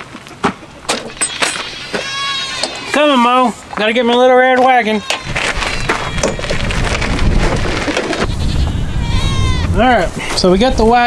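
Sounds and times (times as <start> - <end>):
wagon rattling over rough ground: 0.0 - 8.7
goats bleating: 1.2 - 7.0, 8.0 - 10.5.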